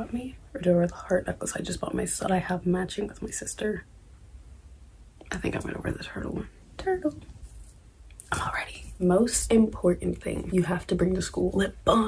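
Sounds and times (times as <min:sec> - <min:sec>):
whispered speech: 0:05.3 - 0:07.2, 0:08.2 - 0:10.7.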